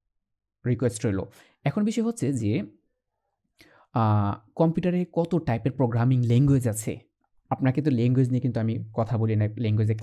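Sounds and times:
man lecturing: 0:00.6 - 0:02.8, 0:03.9 - 0:10.0.

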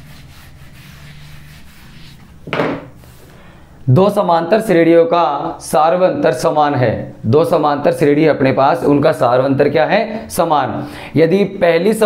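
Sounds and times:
duster rubbing on whiteboard: 0:00.0 - 0:03.3.

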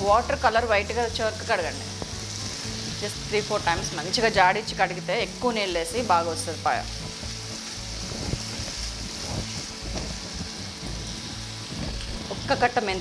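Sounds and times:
onions sizzling in hot oil: 0:00.0 - 0:13.0.

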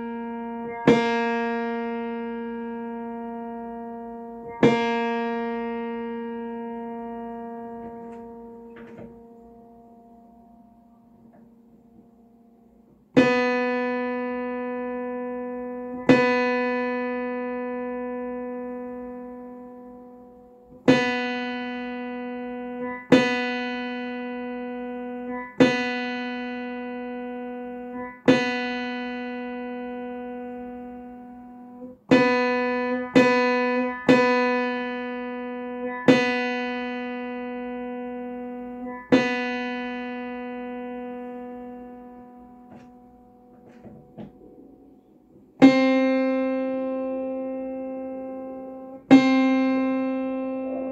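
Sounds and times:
piano note struck and ringing: 0:00.0 - 0:20.1, 0:20.9 - 0:50.9.

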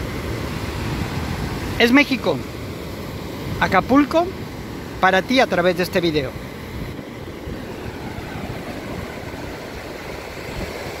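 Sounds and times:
ocean surf breaking: 0:00.0 - 0:11.0.

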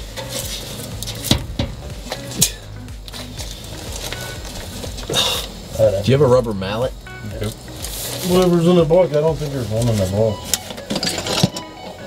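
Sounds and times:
metal exhaust pipe clinks: 0:00.0 - 0:05.1, 0:06.3 - 0:12.0.

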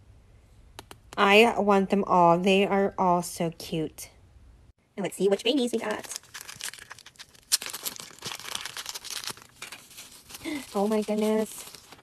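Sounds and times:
foil packet crinkling: 0:05.8 - 0:12.0
paper wrapper unfolding: 0:05.9 - 0:12.0.

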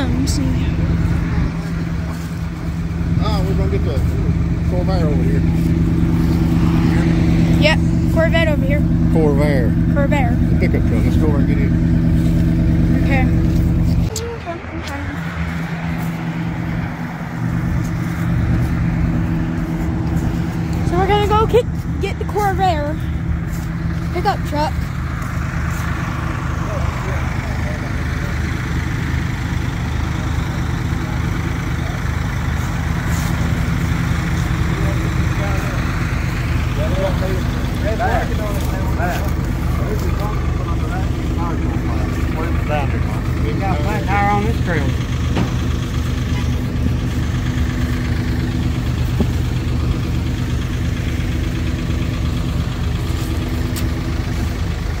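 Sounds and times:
engine idling: 0:00.0 - 0:55.0
indistinct voices: 0:00.0 - 0:55.0.

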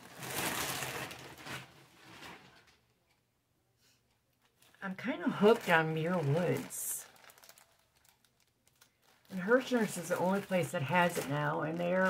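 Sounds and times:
packaging rustling: 0:00.0 - 0:02.8, 0:04.4 - 0:12.0.

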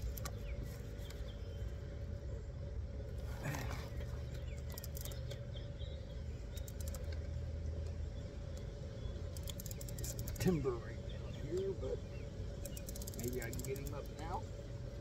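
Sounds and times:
steady low rumble: 0:00.0 - 0:15.0
fishing reel clicking: 0:04.6 - 0:05.4, 0:06.5 - 0:07.2, 0:09.3 - 0:10.6, 0:12.6 - 0:14.4.

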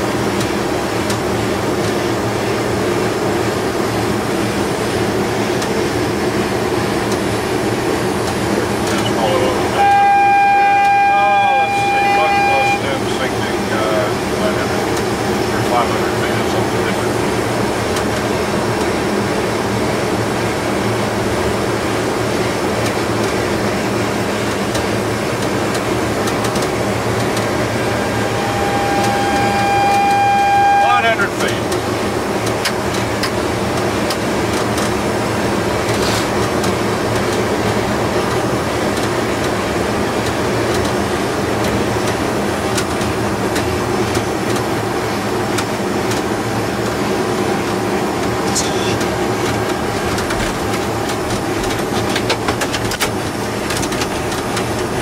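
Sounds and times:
aircraft engine noise: 0:00.0 - 0:55.0
high warning tone: 0:08.9 - 0:13.7, 0:26.7 - 0:31.8.

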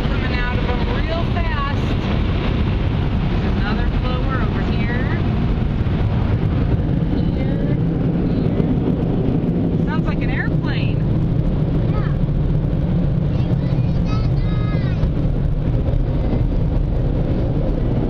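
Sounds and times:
low rumble inside car: 0:00.0 - 0:18.0
children's voices: 0:11.8 - 0:12.2, 0:13.2 - 0:15.2.

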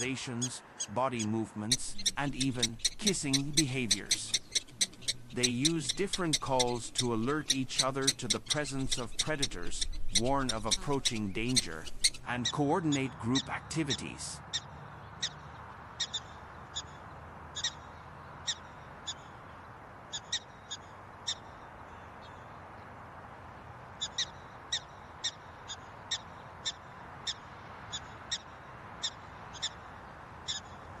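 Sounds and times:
steady background hiss: 0:00.0 - 0:14.5
prairie dog barking: 0:01.7 - 0:12.3.

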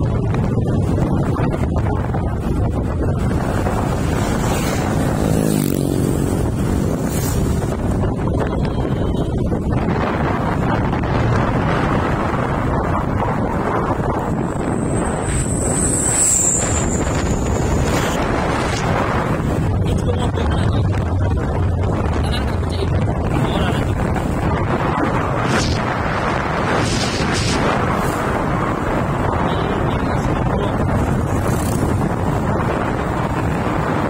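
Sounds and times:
vehicle rumble on road: 0:00.0 - 0:34.0
wind buffeting microphone: 0:00.0 - 0:34.0
thin high whine: 0:14.3 - 0:18.7.

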